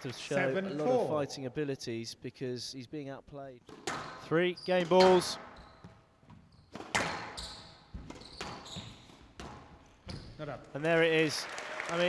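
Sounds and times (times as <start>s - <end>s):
squash ball hits: 3.7s - 4.2s, 6.7s - 7.4s
shoes squeaking on court: 3.7s - 10.5s.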